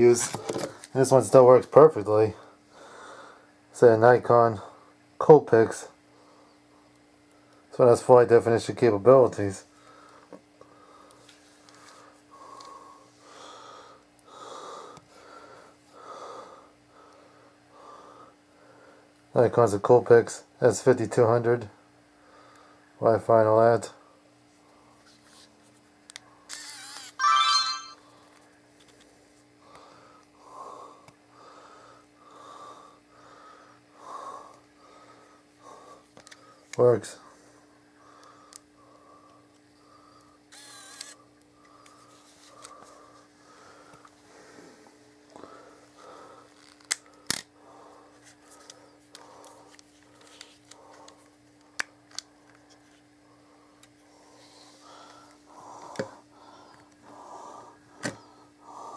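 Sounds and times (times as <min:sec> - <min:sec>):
faint hum: 0:00.0 - 0:19.3, 0:21.6 - 0:58.9
person breathing: 0:02.7 - 0:03.5, 0:11.8 - 0:19.1, 0:41.6 - 0:51.3, 0:53.3 - 0:58.9
camera mechanism whirring: 0:26.5 - 0:27.2, 0:40.5 - 0:41.2
camera click: 0:40.6 - 0:41.2.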